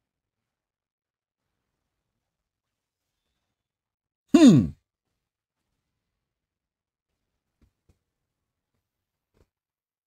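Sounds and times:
man's short wordless vocal sound: 0:04.4 - 0:04.8.

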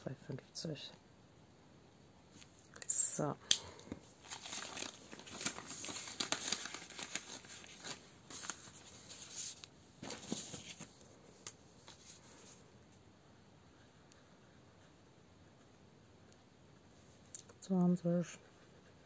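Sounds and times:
paper and card rustling: 0:03.8 - 0:12.6.

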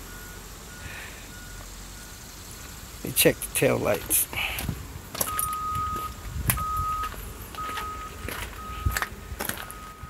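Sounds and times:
back-up alarm beeping: 0:00.0 - 0:02.2, 0:05.2 - 0:09.0, 0:09.6 - 0:10.0
low engine rumble: 0:00.0 - 0:10.0.

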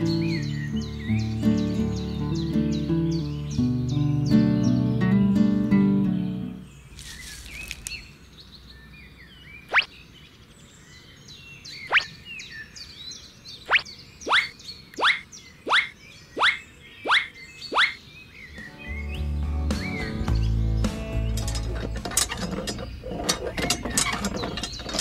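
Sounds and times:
faint birdsong: 0:00.0 - 0:25.0.

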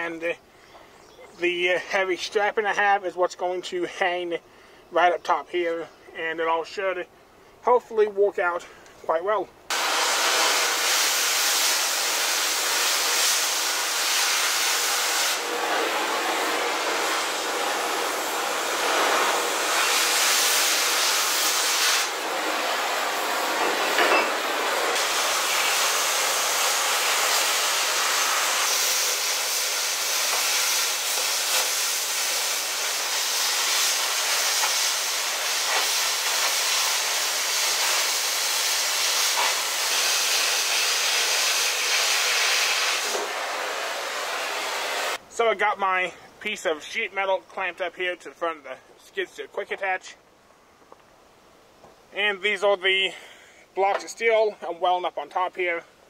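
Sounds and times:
cutting torch hissing roar: 0:09.7 - 0:45.2.

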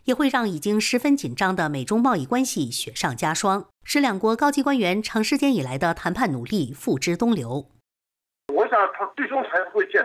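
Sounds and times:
person speaking over a telephone: 0:08.5 - 0:10.0.

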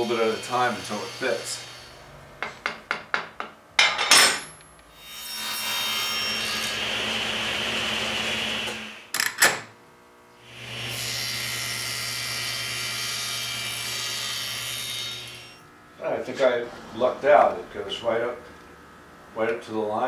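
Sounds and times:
table saw running: 0:00.0 - 0:02.0, 0:05.0 - 0:09.2, 0:10.4 - 0:18.4.

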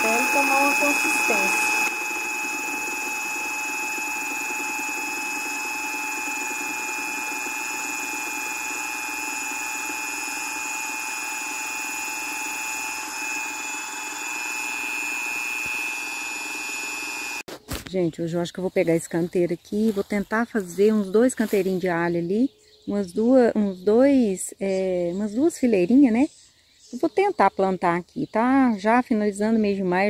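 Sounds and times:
electric drill mixing whine: 0:00.0 - 0:17.5.

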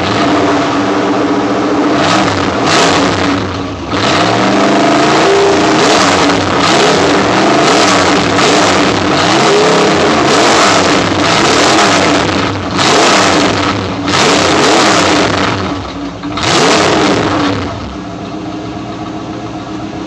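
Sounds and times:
car engine revving and idling: 0:00.0 - 0:20.0.

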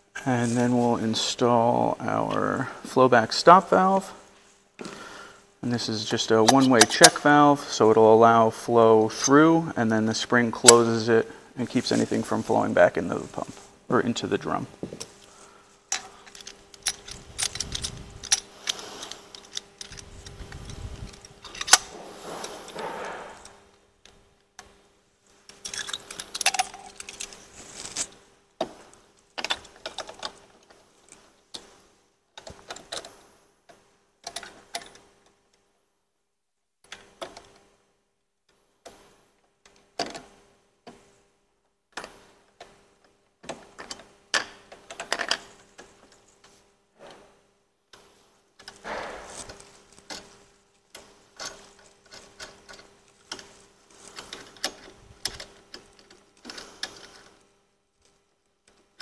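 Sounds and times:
metallic clicks and clinks: 0:25.5 - 0:27.4.

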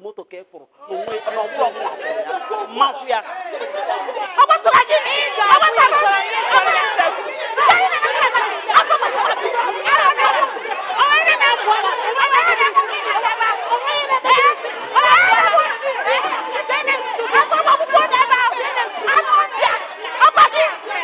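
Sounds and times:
women shouting and quarrelling: 0:00.8 - 0:21.0.

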